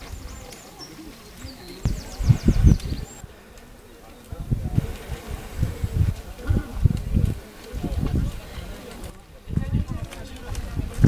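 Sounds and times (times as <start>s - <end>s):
songbirds trilling: 0.0s - 4.2s
faint voices: 0.0s - 11.0s.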